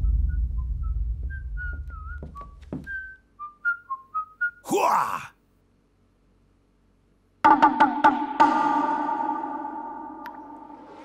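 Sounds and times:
low rumble: 0.0s - 2.2s
person whistling a tune: 0.0s - 4.7s.

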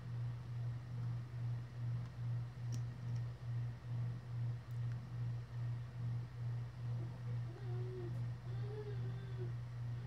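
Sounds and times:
low pulsing hum: 0.0s - 10.0s.

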